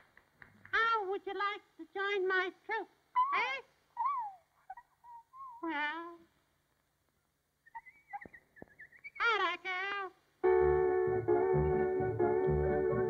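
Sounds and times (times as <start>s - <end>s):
cartoon bird cooing calls: 4.0s - 6.1s, 7.7s - 9.7s.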